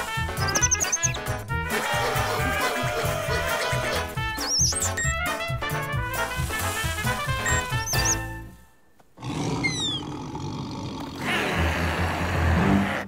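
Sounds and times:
cartoon music: 0.0 - 6.4, 7.0 - 8.3.

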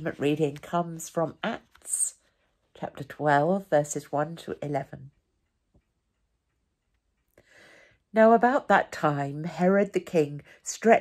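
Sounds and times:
clock ticking faintly: 3.8 - 8.8.

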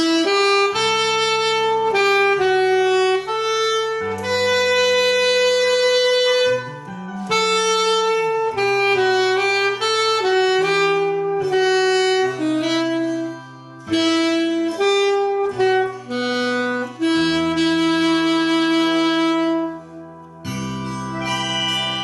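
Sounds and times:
alto saxophone melody: 0.0 - 22.0
backing accompaniment: 0.0 - 22.0.

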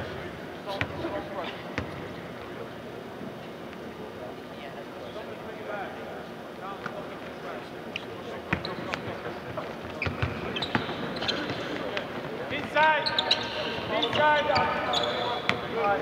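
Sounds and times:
voices in background: 0.0 - 16.0.

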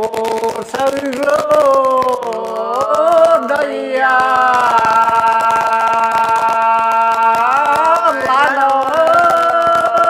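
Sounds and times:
fast ticking beat: 0.0 - 10.0
person singing long note: 1.2 - 10.0.

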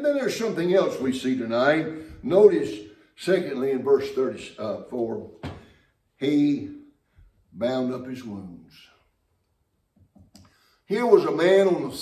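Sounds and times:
man preaching: 0.0 - 5.6, 6.2 - 9.0, 10.8 - 12.0.

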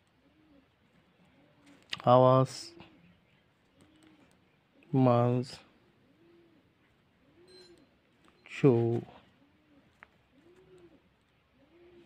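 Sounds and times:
bird cooing softly: 0.0 - 12.0
faint high bird chirp: 0.0 - 12.0.

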